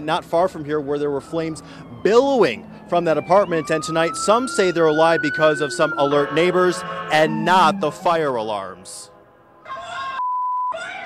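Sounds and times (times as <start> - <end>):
censor bleep: 10.2 - 10.8.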